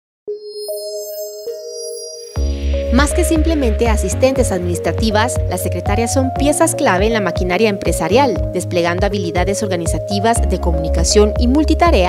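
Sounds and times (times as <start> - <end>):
bell-like chime notes: 0.3 - 3.9.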